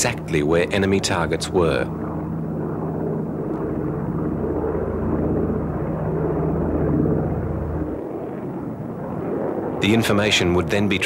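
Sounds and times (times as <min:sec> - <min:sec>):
propeller aircraft engines droning: 0:00.0 - 0:11.0.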